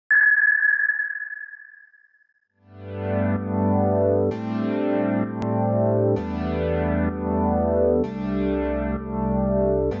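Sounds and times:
high electronic ping: 0.1 - 2.2.

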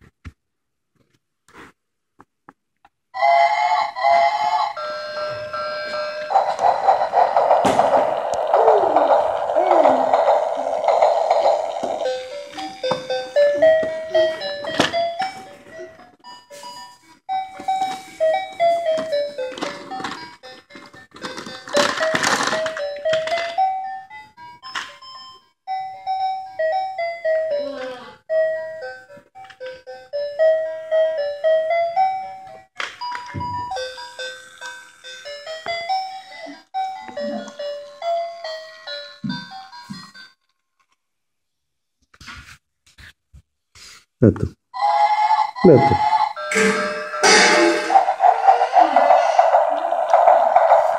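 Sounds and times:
toy train electronic melody: 3.2 - 40.5, 44.8 - 50.9
plastic toys knocking: 6.3 - 13.2.

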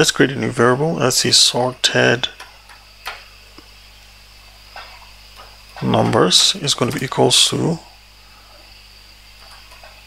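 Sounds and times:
background hiss: 0.0 - 10.0
faint high-pitched whine: 0.0 - 10.0.

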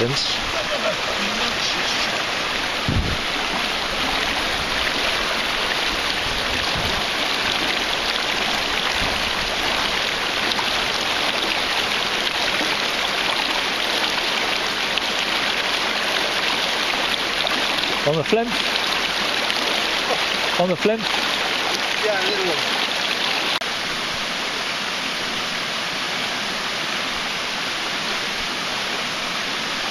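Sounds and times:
stream rushing over rocks: 0.0 - 29.9
short low thump: 2.8 - 3.3.

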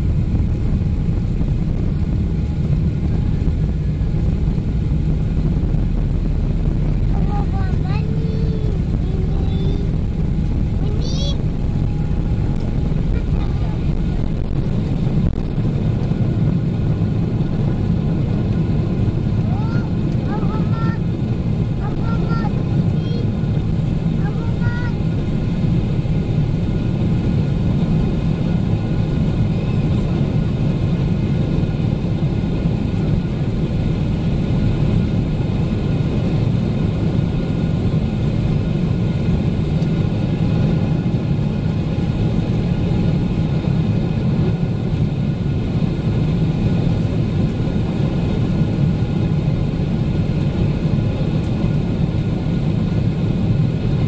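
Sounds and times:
jet engine low rumble: 0.0 - 54.0
rushing airflow: 0.0 - 54.0.

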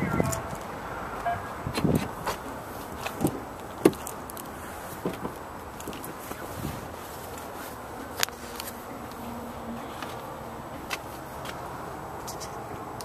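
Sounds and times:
outdoor background hum: 0.0 - 13.0.

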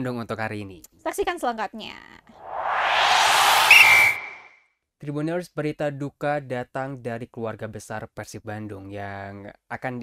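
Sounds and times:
whoosh transition effect: 2.4 - 4.5
short high ping: 2.8 - 4.5.

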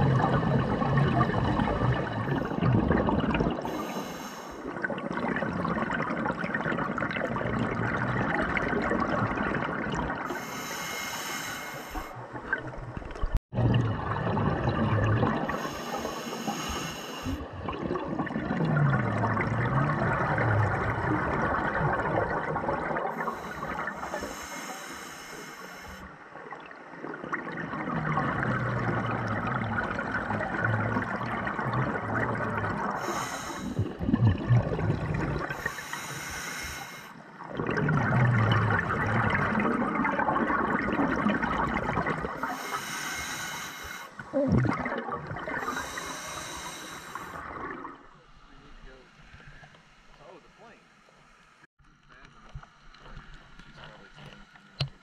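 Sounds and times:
exhaled bubbles rushing: 0.0 - 3.8, 4.6 - 10.5, 12.1 - 24.2, 26.1 - 35.8, 37.4 - 42.8, 44.2 - 48.5
regulator inhale hiss: 3.7 - 4.7, 10.3 - 12.2, 15.5 - 17.4, 23.1 - 26.1, 32.9 - 33.9, 35.5 - 37.2, 42.4 - 44.3, 45.6 - 47.4.

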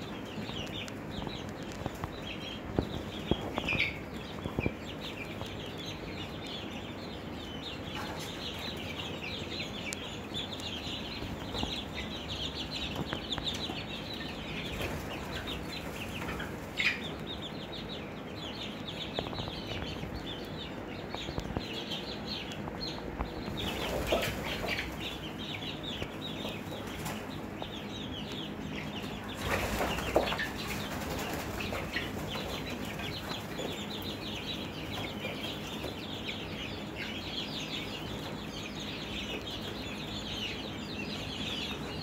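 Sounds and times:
chicks peeping: 0.0 - 42.0.

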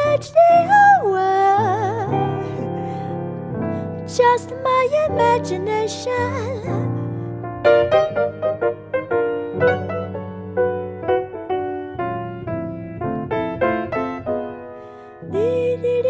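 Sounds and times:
solo piano jazz ballad: 0.0 - 16.0.

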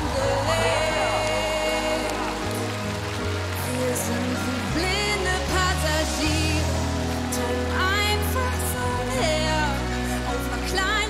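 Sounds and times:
audience applause: 0.0 - 11.0
instrumental pop ballad: 0.0 - 11.0.

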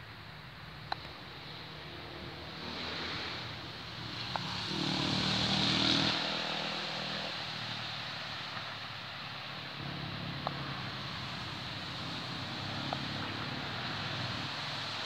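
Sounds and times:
engine-like hum with hiss: 0.0 - 15.0.

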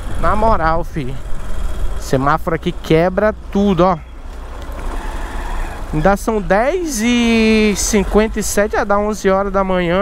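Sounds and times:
motorcycle engine running: 0.0 - 10.0
street and wind noise: 0.0 - 10.0.

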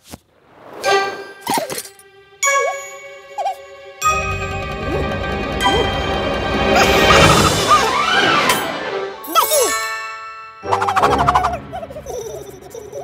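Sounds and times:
bright cartoon music: 0.8 - 13.0.

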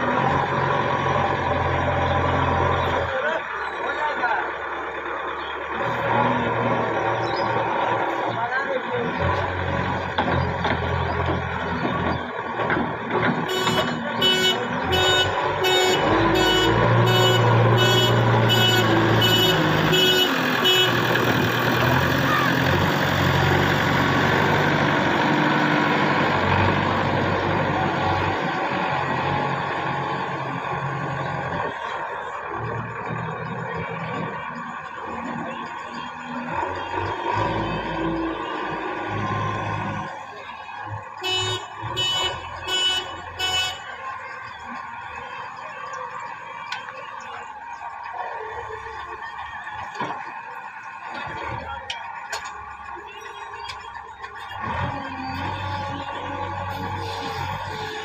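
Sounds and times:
diesel engine running under load: 0.0 - 58.0.

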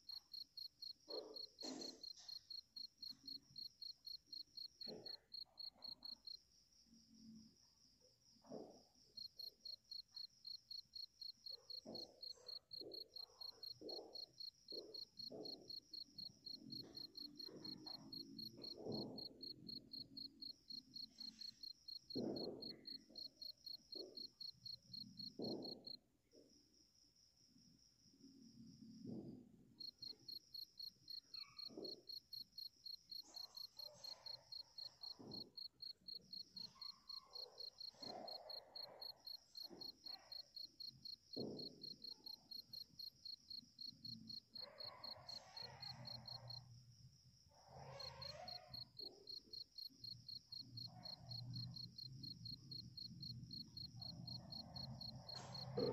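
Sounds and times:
crickets chirping: 0.0 - 55.9.

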